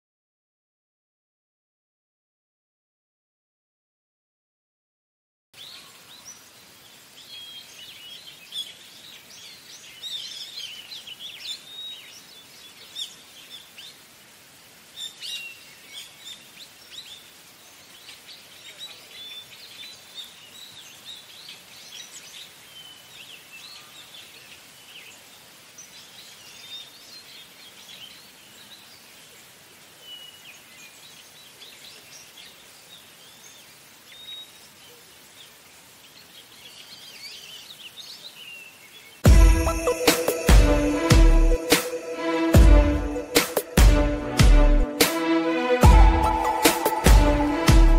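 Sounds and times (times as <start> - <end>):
small birds chirping: 5.6 - 41.0
steady background hiss: 5.6 - 47.7.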